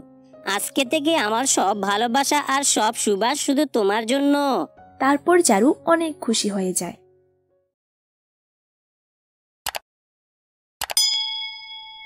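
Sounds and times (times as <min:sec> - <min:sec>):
bright bell ding: 0:11.0 - 0:12.0.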